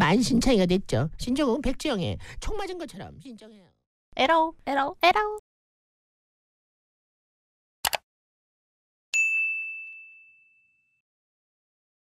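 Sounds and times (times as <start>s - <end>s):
bell-like ding: 9.2s - 11.0s.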